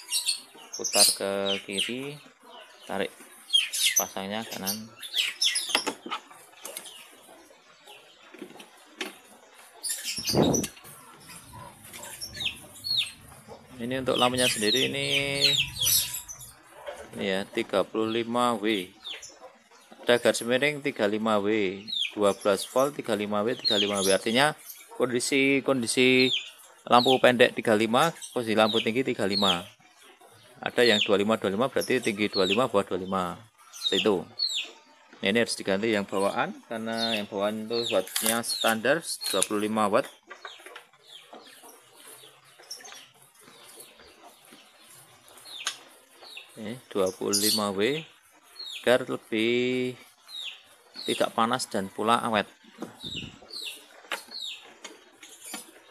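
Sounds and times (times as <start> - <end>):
chickens clucking: 0.0 - 55.9
faint bird chirps: 0.0 - 55.9.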